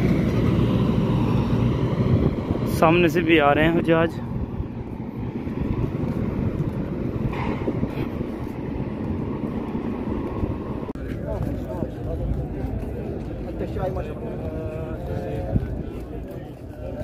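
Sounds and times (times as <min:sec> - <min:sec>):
vehicle traffic: 0:00.0 - 0:17.0
faint voices: 0:10.8 - 0:17.0.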